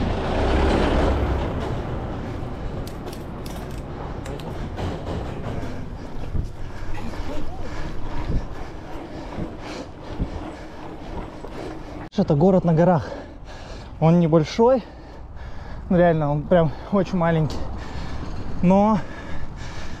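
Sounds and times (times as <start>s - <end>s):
bike knocks and rattles: 1.1s - 12.1s.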